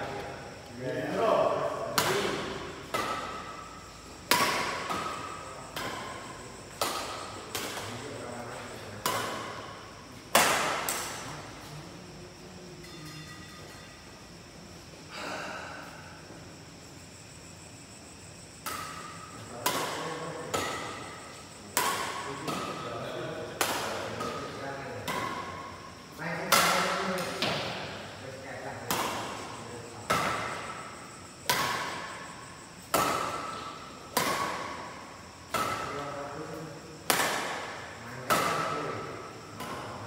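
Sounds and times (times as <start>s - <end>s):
rackets striking shuttlecock: 1.1s - 8.2s, 8.9s - 11.3s, 18.6s - 28.2s, 28.8s - 36.0s, 37.0s - 40.0s.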